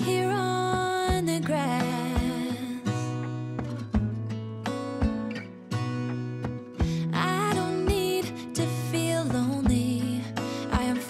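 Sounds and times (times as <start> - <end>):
person singing: 0.0 - 3.0, 6.9 - 11.0
country song: 0.0 - 11.0
strummed acoustic guitar: 0.0 - 11.0.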